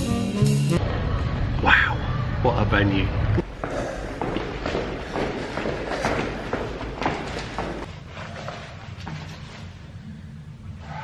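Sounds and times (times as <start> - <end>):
footsteps walking: 3.4 - 10.0.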